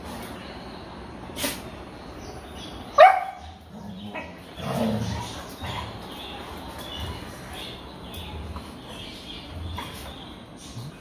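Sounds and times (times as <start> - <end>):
dog barking: 3.0 - 3.5
dogs growling: 3.4 - 11.0.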